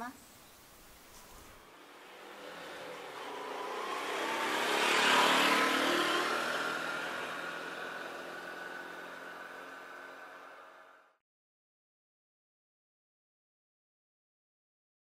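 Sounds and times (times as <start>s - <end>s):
car driving past: 1.6s - 11.2s.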